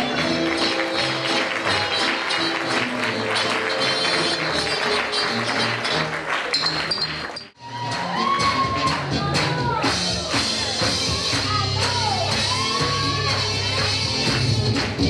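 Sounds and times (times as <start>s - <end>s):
upbeat dance music: 0.0s - 15.0s.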